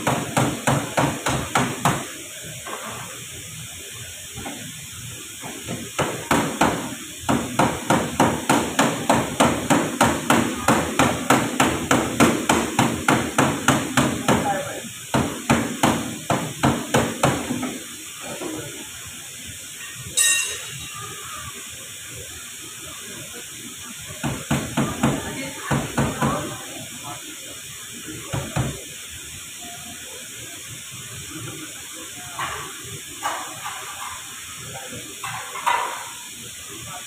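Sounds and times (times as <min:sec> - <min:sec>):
ringing metallic clank: 0:20.2 - 0:21.2.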